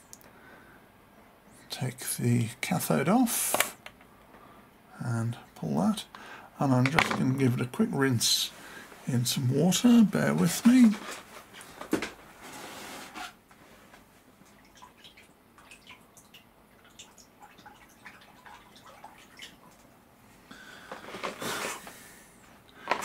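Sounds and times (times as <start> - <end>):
small drips and ticks: 14.4 - 20.0.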